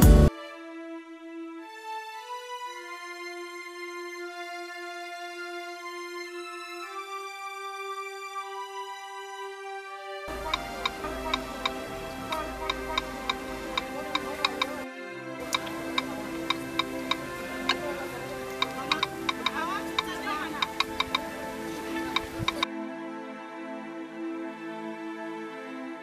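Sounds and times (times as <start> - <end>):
soft background music: 0.0 - 26.0.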